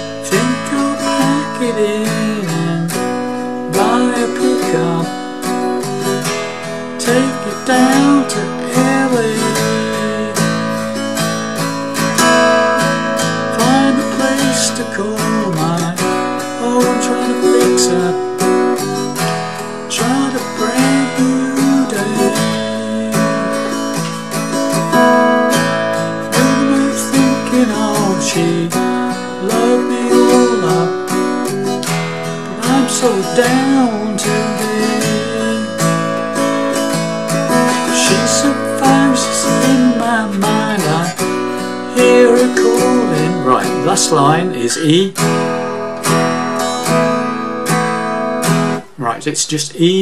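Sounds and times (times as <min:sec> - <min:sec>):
person singing: 0:00.0 - 0:47.4, 0:48.8 - 0:50.0
acoustic guitar strumming: 0:00.0 - 0:50.0.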